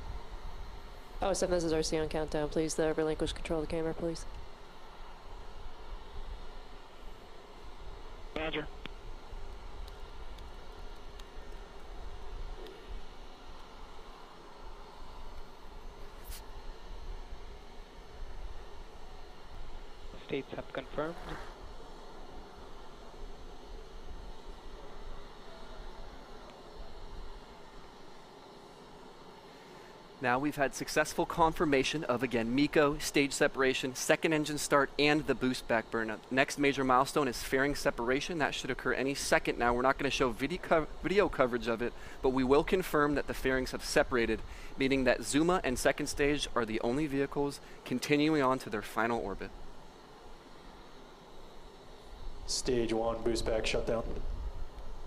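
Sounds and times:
rocket engine hiss and rumble: 0.0s - 55.0s.

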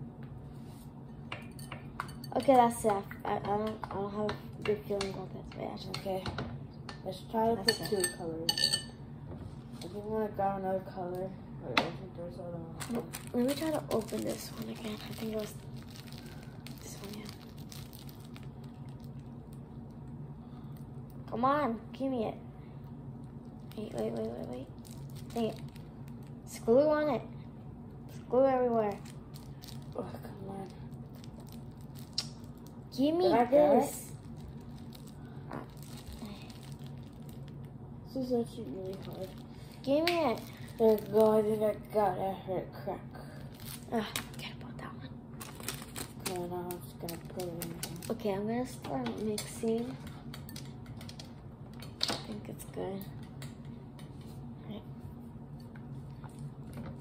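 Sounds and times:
low steady hum: 0.0s - 57.0s
plastic packet handling: 12.8s - 19.6s, 23.6s - 26.4s, 28.7s - 30.2s, 30.9s - 32.8s, 34.1s - 37.7s, 38.8s - 41.5s, 45.4s - 48.3s.

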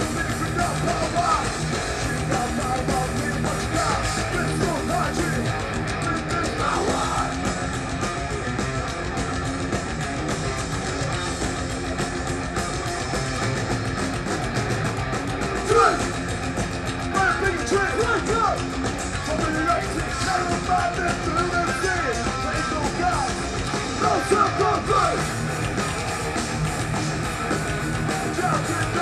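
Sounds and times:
heavy metal band playing live: 0.0s - 29.0s.

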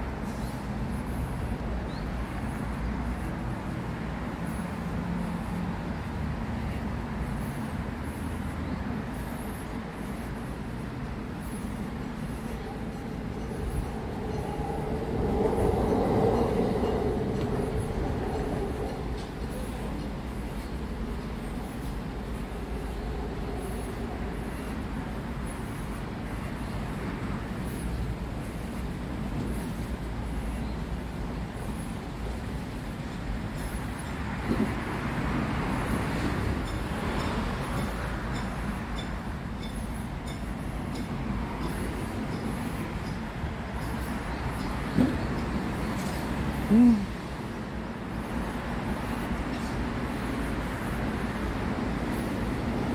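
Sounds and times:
urban background rumble: 0.0s - 52.9s.

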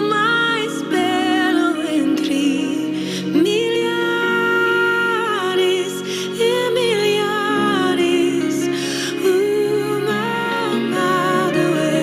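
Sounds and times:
electric guitar: 0.0s - 12.0s
sustained chords: 0.0s - 12.0s.

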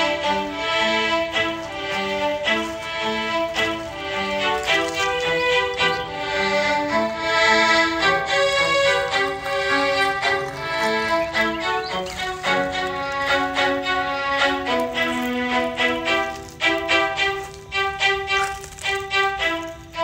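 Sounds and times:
violin melody: 0.0s - 20.0s.

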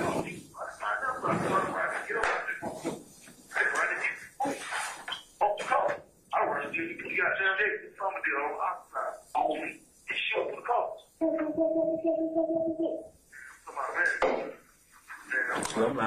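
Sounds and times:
man speaking on phone recording: 0.0s - 4.4s, 5.4s - 11.1s, 13.3s - 16.0s.

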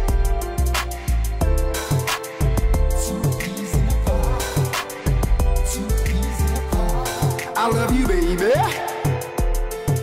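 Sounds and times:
hip hop beat: 0.0s - 10.0s.

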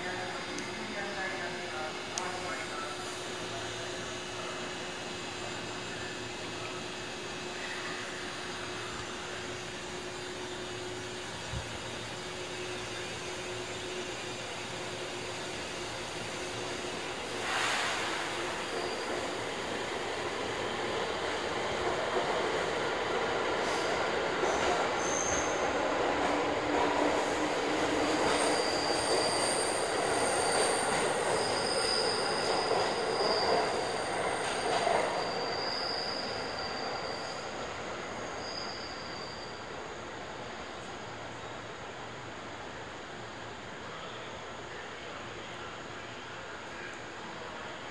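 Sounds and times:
standing electric train hum: 0.0s - 47.9s
train wheels squealing: 2.5s - 22.1s, 23.5s - 25.9s, 26.7s - 40.0s
hiss of air: 16.8s - 19.4s, 23.6s - 24.0s.

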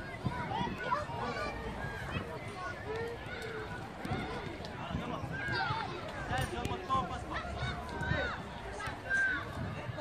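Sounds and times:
children shouting: 0.0s - 6.4s, 7.0s - 9.7s.

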